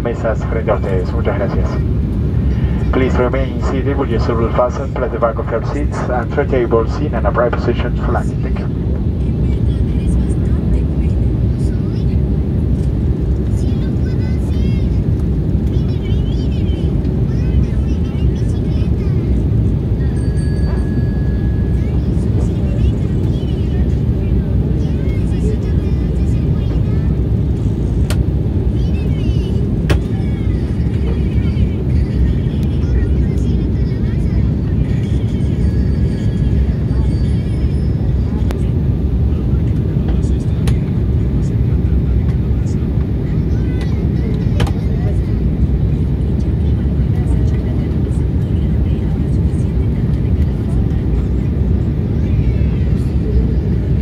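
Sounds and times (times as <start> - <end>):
airliner cabin roar: 0.0 - 54.0
faint voices: 0.0 - 54.0.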